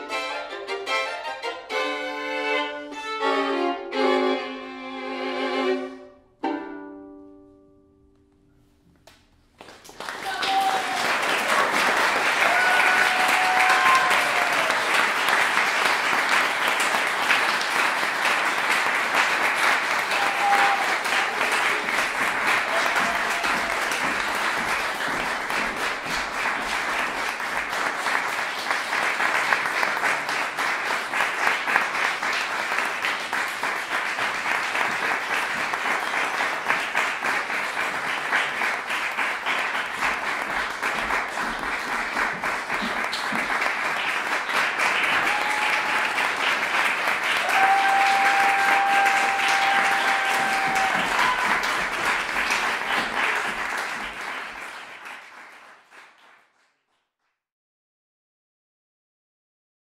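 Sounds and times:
audience applause: 9.5s - 57.0s.

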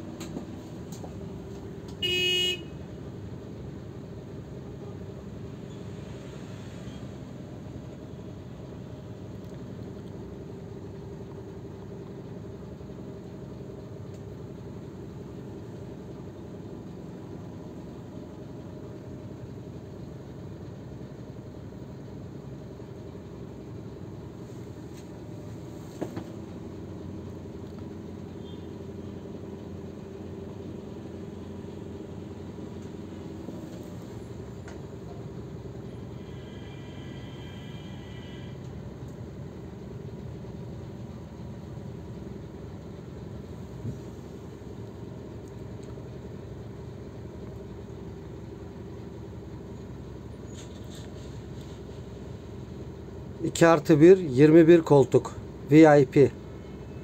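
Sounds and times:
coach engine humming: 0.0s - 57.0s
short horn toot: 2.0s - 2.8s
click: 27.6s - 27.9s.

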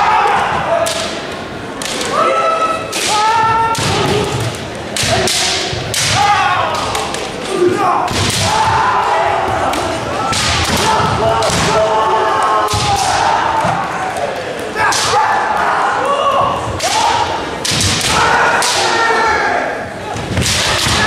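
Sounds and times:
fighters shouting: 0.0s - 1.2s, 1.9s - 4.4s, 5.0s - 21.0s
bamboo swords striking: 2.9s - 8.8s, 9.6s - 11.8s.

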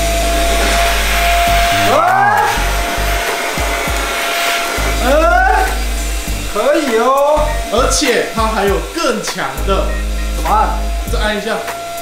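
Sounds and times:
handheld vacuum cleaner running: 0.0s - 9.6s.

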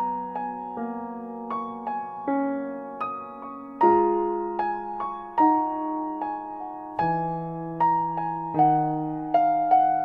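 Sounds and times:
slow solo piano: 0.0s - 10.0s.

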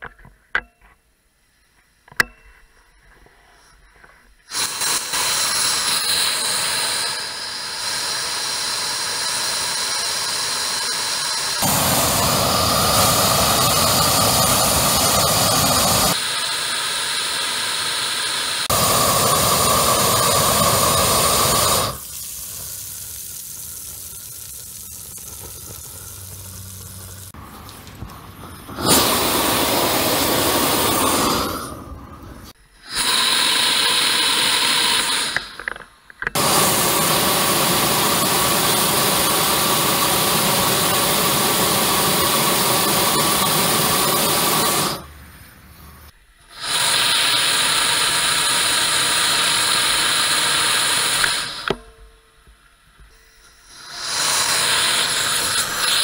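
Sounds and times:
pilot flame hissing: 3.4s - 35.8s, 36.4s - 51.8s, 53.6s - 56.0s
propane torch blasting: 4.5s - 51.8s, 53.6s - 56.0s.

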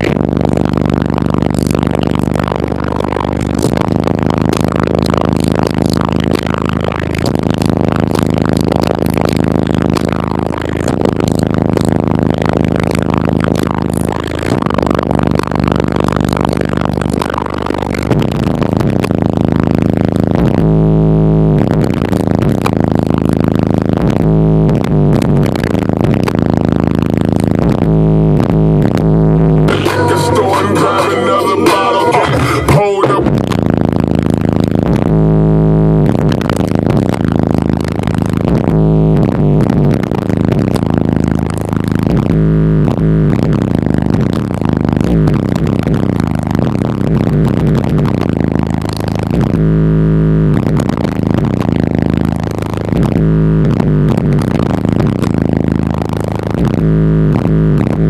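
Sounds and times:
bass-heavy music in car: 0.0s - 58.0s.

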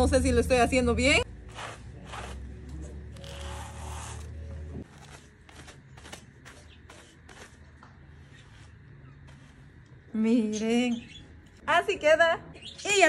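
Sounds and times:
wool carding scraping strokes: 1.4s - 10.0s.

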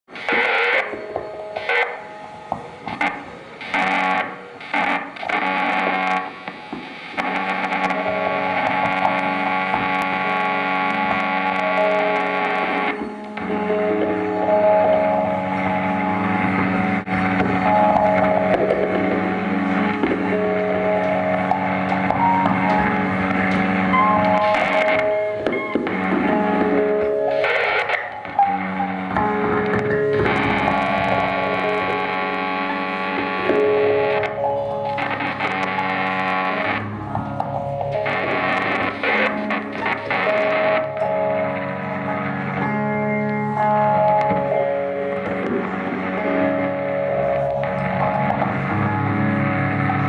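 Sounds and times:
distorted electric guitar: 0.0s - 50.0s.

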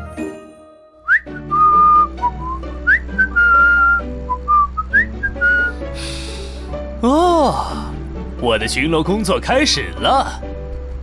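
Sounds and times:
backing music: 0.0s - 11.0s
cheerful whistled tune: 1.0s - 5.8s.

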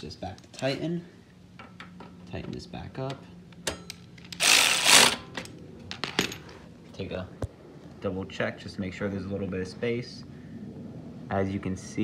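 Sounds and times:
ratchet clicking: 4.3s - 5.2s.

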